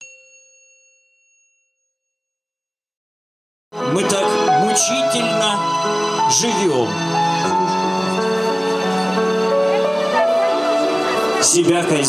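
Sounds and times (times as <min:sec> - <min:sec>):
bell-like chime: 0:00.0 - 0:02.2.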